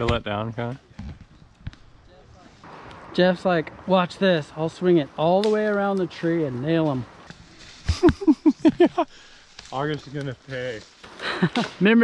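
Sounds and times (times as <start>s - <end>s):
person laughing: 7.8s - 9.2s, 11.2s - 11.8s.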